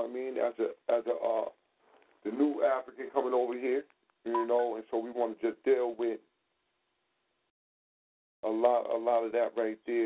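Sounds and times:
person talking over telephone: 2.3 - 6.2.

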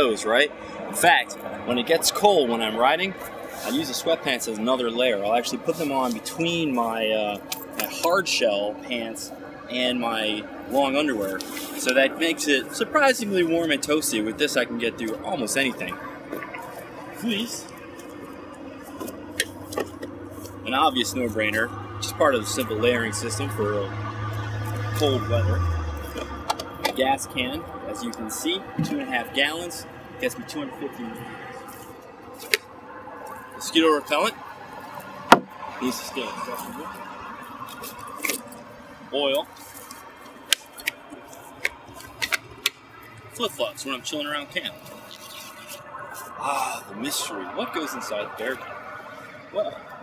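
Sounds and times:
highway traffic: 0.0 - 50.0.

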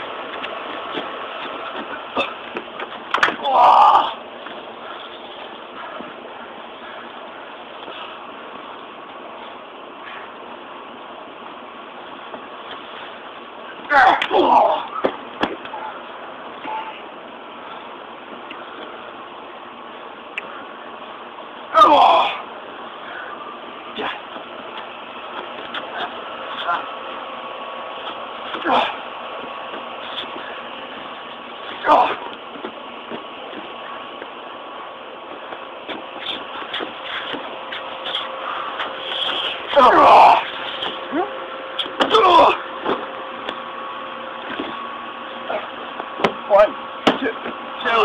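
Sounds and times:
outdoor background noise: 0.0 - 48.0
men yelling and grunting: 3.2 - 4.3, 21.7 - 22.5, 31.7 - 32.3, 39.6 - 42.7.

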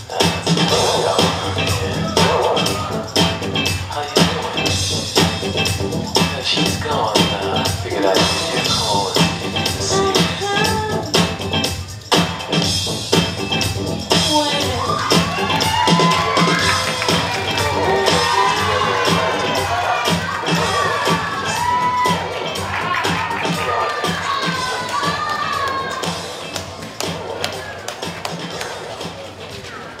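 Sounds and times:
audience cheering and shouting: 0.0 - 4.8, 14.1 - 28.9
music with steady beat: 0.0 - 29.7.

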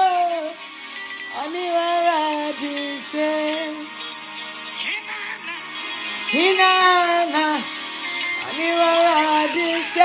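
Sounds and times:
woman singing: 1.3 - 3.9, 8.4 - 10.0.

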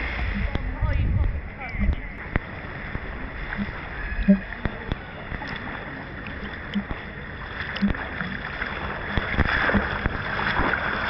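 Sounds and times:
water lapping: 0.0 - 11.0
swimming strokes splashing: 1.8 - 11.0.

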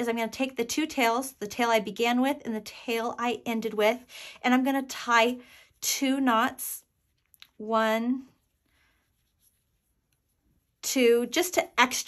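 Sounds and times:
faint rub of yarn: 3.8 - 12.0.

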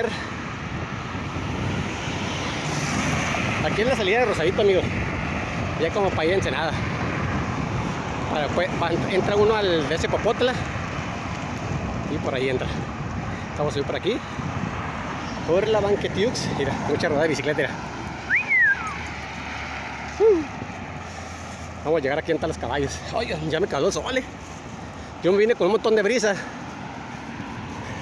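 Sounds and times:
road traffic noise: 0.0 - 28.0
wind rushing over microphone: 0.0 - 28.0
man talking: 3.6 - 5.0, 5.8 - 6.9, 8.3 - 10.7, 12.1 - 12.9, 13.6 - 14.3, 15.4 - 17.8, 21.8 - 24.4, 25.2 - 26.6.

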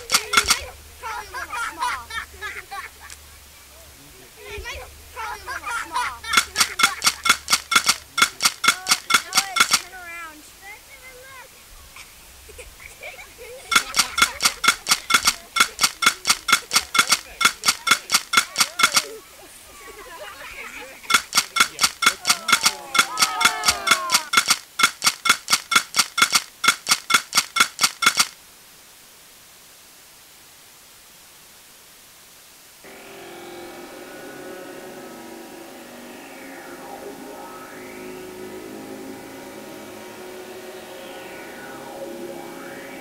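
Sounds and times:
metallic percussive clicks: 0.0 - 0.8, 5.9 - 9.9, 13.7 - 19.2, 21.0 - 28.4
steady static hiss: 0.0 - 43.0.

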